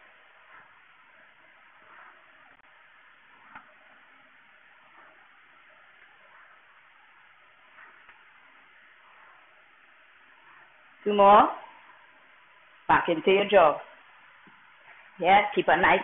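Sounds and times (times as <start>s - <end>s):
faint room hiss: 0.0s - 16.0s.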